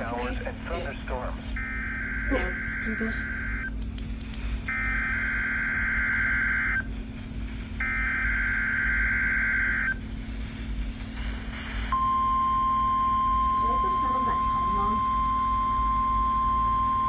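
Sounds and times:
steady warning alarm tone: 0.0 - 3.9, 4.6 - 7.0, 7.6 - 10.2, 11.8 - 17.0.

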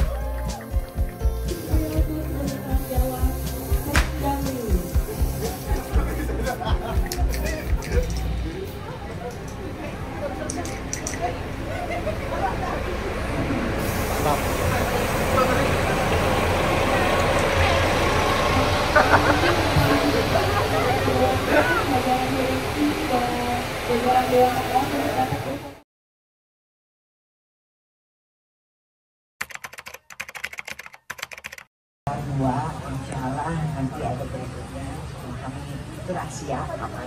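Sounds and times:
bus diesel engine rumble: 0.0 - 25.8, 32.1 - 37.0
even hiss: 1.4 - 8.7
keyboard typing clicks: 29.4 - 31.7.

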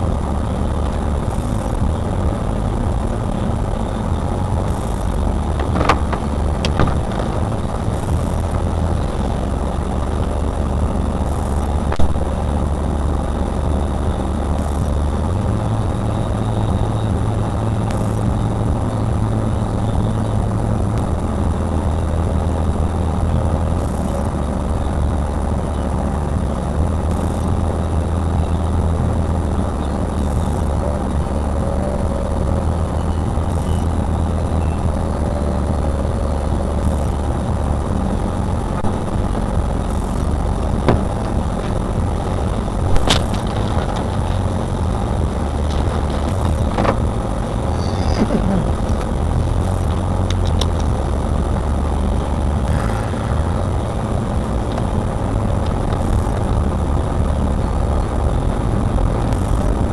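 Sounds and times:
car engine idling: 0.0 - 59.9.

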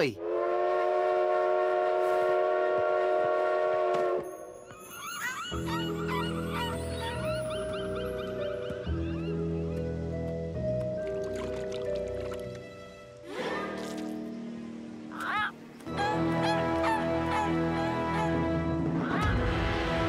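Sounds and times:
train whistle blast: 0.2 - 4.3
gentle music: 3.1 - 20.0
seagulls calling: 4.7 - 10.0, 15.1 - 19.5.

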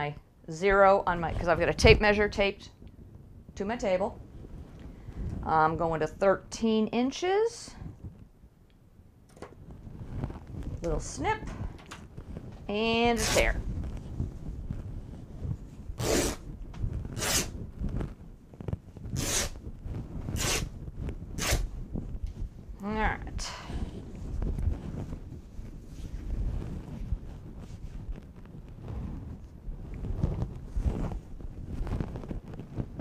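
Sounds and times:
fabric rustling and flapping: 9.5 - 22.8, 23.7 - 33.0
low rumble: 9.6 - 33.0
fabric being torn by hand: 13.2 - 13.6, 16.0 - 16.5, 17.1 - 17.6, 19.1 - 19.6, 20.3 - 20.8, 21.4 - 21.7.

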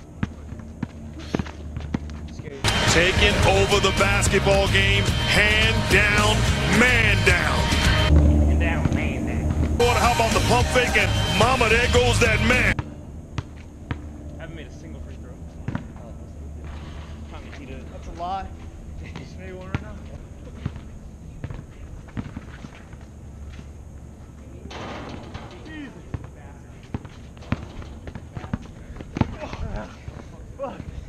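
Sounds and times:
basketball bouncing on asphalt: 0.0 - 2.5, 12.8 - 14.2, 15.6 - 15.9, 20.6 - 23.0, 26.1 - 30.2.

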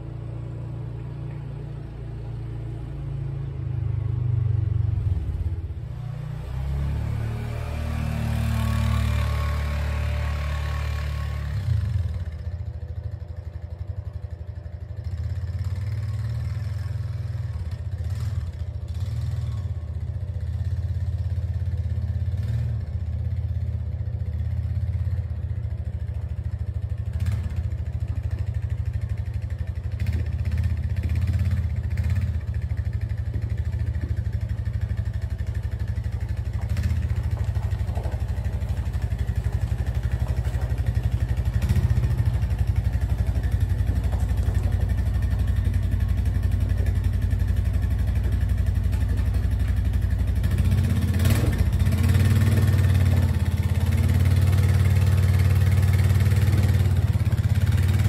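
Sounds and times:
atv engine revving: 0.0 - 14.3, 14.9 - 58.0.

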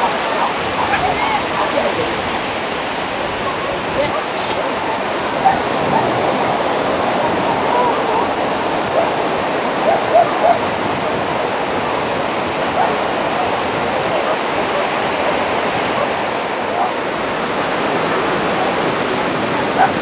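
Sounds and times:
distant voices and shouts: 0.0 - 20.0
small waves breaking: 0.0 - 20.0.

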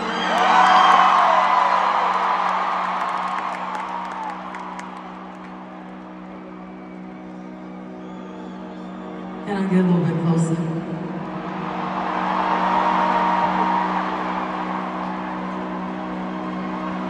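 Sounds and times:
stadium crowd cheering and screaming: 0.0 - 17.0
held synth chord: 3.6 - 17.0.

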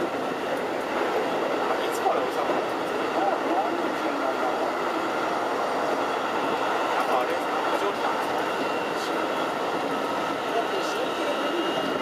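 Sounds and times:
train wheels rumbling on rail: 0.0 - 12.0.

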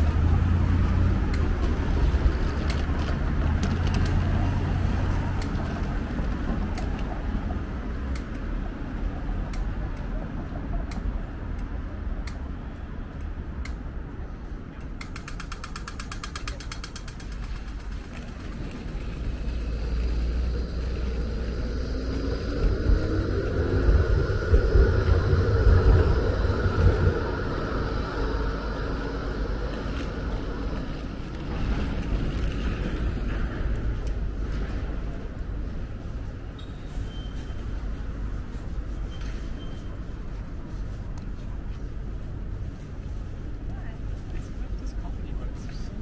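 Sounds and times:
city traffic: 0.0 - 46.0
electric tram rumbling past: 0.0 - 46.0.

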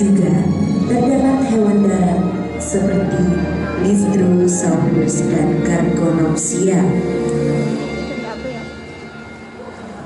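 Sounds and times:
film soundtrack music: 0.0 - 10.0
faint voices: 7.6 - 10.0.

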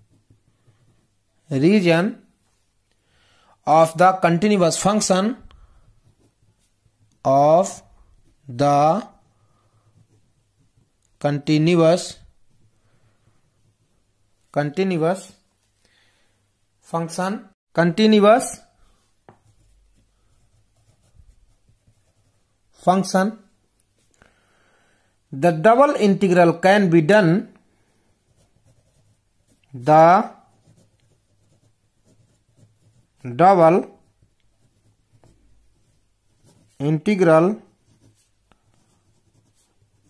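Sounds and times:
pen scratching on paper: 0.0 - 1.2, 4.7 - 11.2, 18.9 - 22.6, 28.1 - 40.0.

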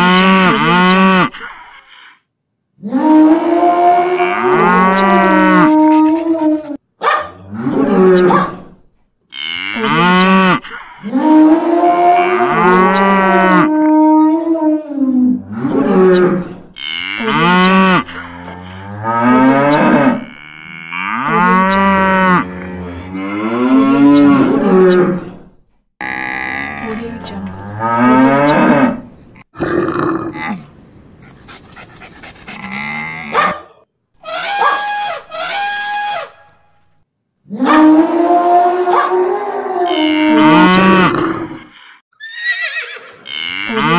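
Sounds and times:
cattle mooing: 3.0 - 6.7, 9.3 - 14.4, 15.4 - 25.2, 39.7 - 41.6, 43.2 - 43.9.

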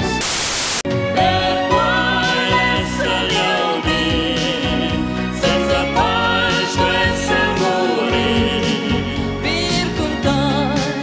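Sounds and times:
static hiss burst: 0.0 - 0.8
pop music: 0.0 - 11.0
male vocal group singing: 1.4 - 11.0.

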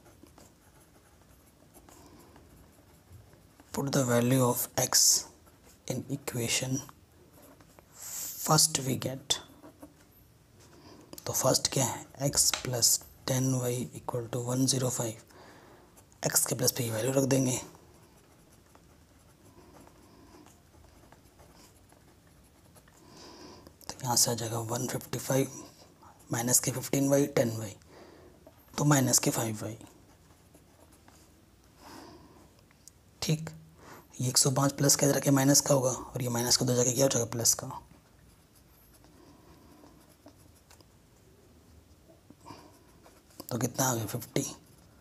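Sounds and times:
pen scratching on paper: 0.0 - 13.4, 15.9 - 27.7, 28.4 - 31.4, 34.3 - 45.0.

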